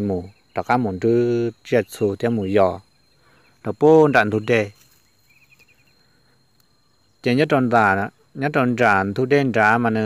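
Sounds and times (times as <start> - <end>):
man narrating: 0.0 - 2.8, 3.6 - 4.8, 7.2 - 10.0.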